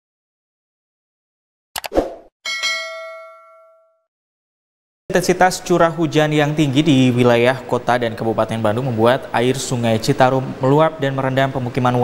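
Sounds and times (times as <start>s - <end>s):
notification bell ding: 2.5s - 4.1s.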